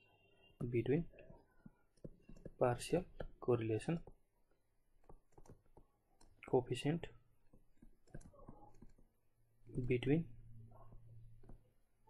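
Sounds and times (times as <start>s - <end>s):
stylus tapping on tablet screen: 1.2s - 4.3s, 4.9s - 6.5s, 7.4s - 10.0s.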